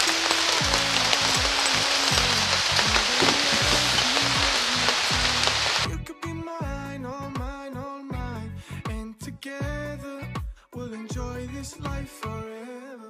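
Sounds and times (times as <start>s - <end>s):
rain falling: 0.0s - 5.9s
background music with bass line: 0.0s - 12.5s.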